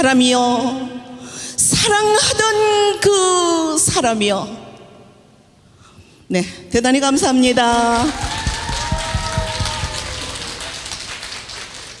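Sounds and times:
audience applauding: 7.7 - 12.0.

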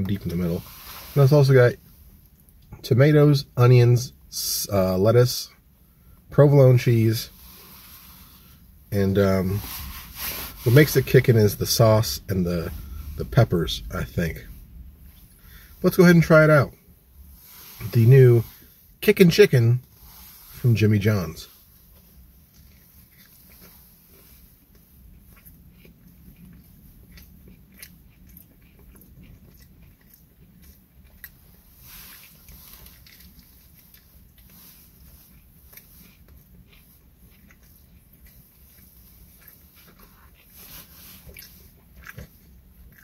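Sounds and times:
low steady hum: 0.0 - 43.0
chewing sandwich crunches: 21.0 - 43.0.

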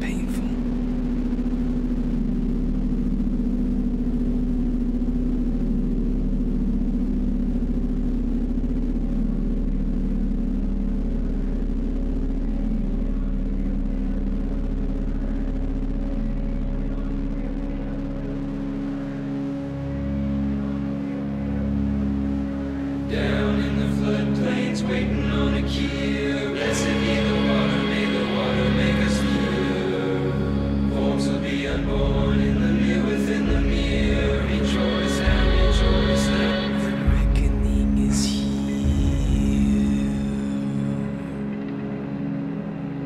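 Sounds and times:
indie rock drone of held tones: 0.0 - 43.0.

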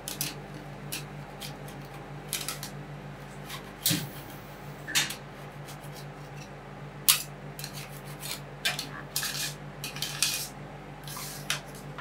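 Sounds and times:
metal spatulas scraping ice: 7.6 - 11.8.

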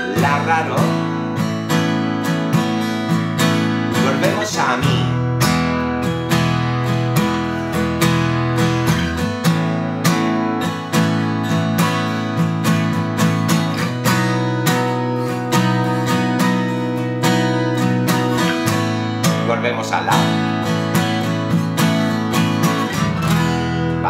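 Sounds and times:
acoustic guitar strumming: 0.0 - 24.0.

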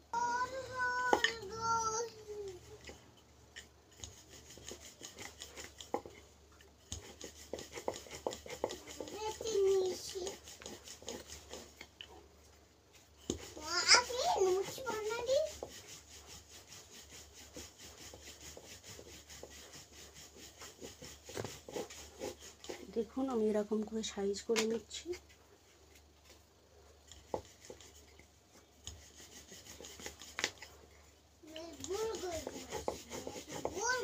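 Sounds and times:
child's voice: 0.1 - 2.8, 8.8 - 10.4, 13.5 - 15.6, 31.4 - 34.0
rolling pin rolling dough: 0.2 - 34.0.

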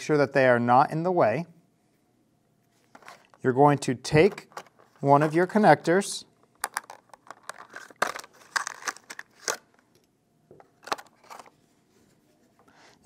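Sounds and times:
plastic packaging crinkling: 6.6 - 10.0, 10.8 - 11.6.

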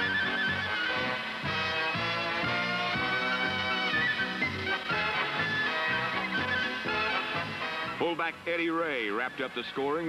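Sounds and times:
instrumental music with steady beat: 0.0 - 8.0.

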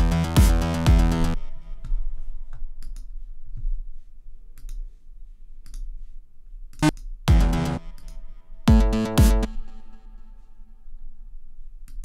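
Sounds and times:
synth sound: 7.3 - 10.7.

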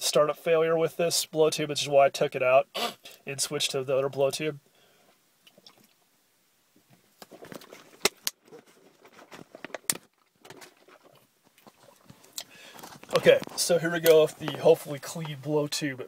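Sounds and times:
plastic rustling: 7.2 - 15.8.

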